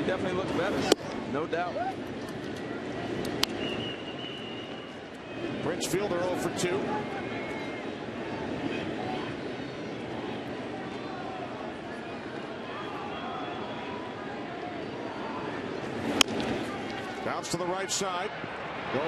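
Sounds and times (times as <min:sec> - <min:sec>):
crowd chatter: 0:00.0 - 0:19.0
bat cracking on a ball: 0:16.1 - 0:17.1.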